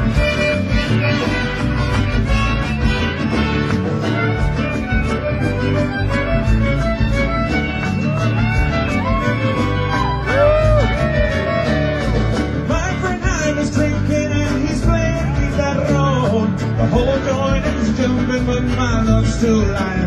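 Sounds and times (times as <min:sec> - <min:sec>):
bass and drum beat: 0:00.0 - 0:20.0
guitar: 0:00.0 - 0:20.0.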